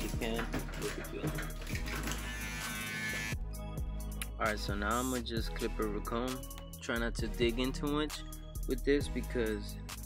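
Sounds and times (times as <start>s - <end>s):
background music: 0.0s - 10.0s
electric shaver buzzing: 1.7s - 3.5s.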